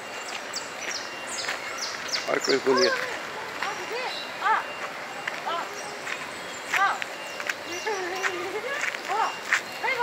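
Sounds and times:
birds chirping: 0:00.0 - 0:10.0
outdoor background noise: 0:00.0 - 0:10.0.

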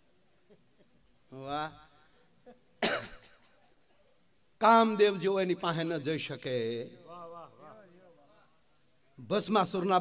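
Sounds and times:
sharp cough: 0:02.8 - 0:03.6
man's voice into microphone: 0:04.6 - 0:08.6, 0:09.2 - 0:10.0.

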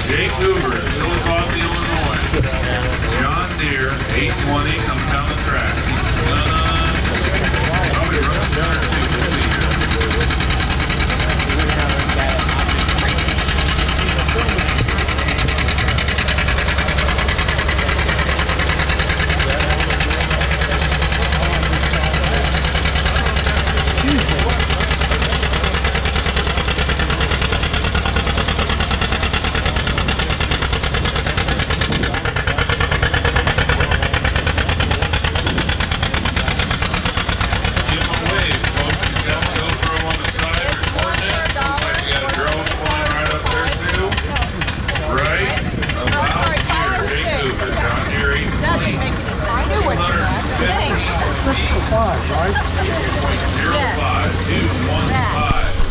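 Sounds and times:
background voices: 0:00.0 - 0:55.9
tractor engine running hard: 0:00.0 - 0:55.9.

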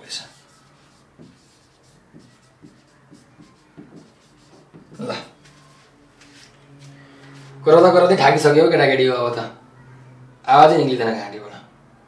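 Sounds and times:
marker writing on whiteboard: 0:00.0 - 0:07.6.

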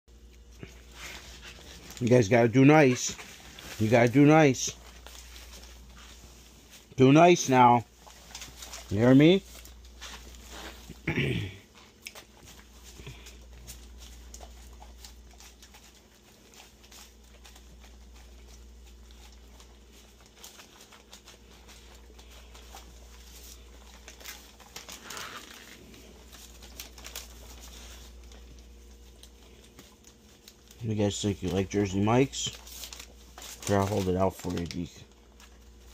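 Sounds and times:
dogs chewing and licking: 0:00.1 - 0:06.9, 0:07.8 - 0:35.9
low steady hum: 0:00.1 - 0:35.9
paper crinkling: 0:00.1 - 0:35.9
man clearing his throat: 0:10.9 - 0:11.7.

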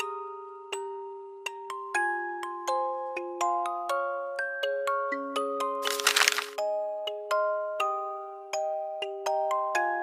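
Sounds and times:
crackling rustle: 0:05.8 - 0:06.6.

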